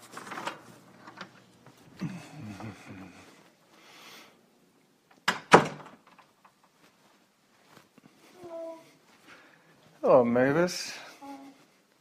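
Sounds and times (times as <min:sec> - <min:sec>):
door closing knocks: 0:05.3 - 0:06.0.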